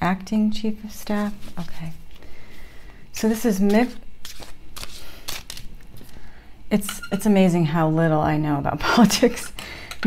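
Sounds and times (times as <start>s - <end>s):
playing cards being shuffled: 1.2s - 2.2s, 3.6s - 6.2s.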